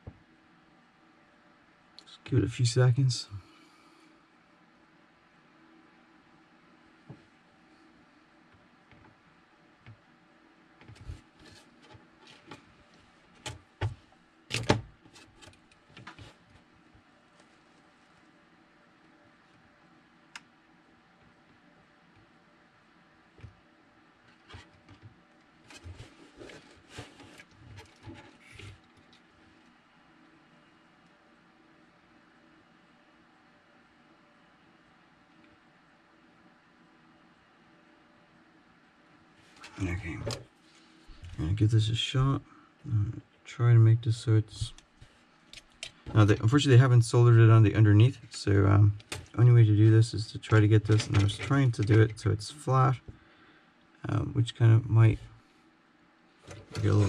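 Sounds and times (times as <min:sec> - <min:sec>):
faint steady hum: 0:00.0 - 0:57.0.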